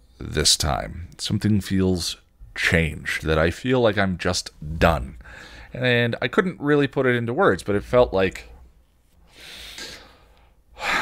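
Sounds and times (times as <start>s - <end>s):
man breathing heavily into hand: 5.2s - 5.7s, 9.2s - 11.0s.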